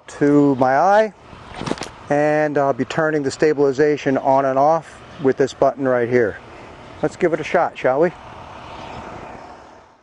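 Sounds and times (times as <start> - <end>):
faint traffic: 0.0 - 10.0.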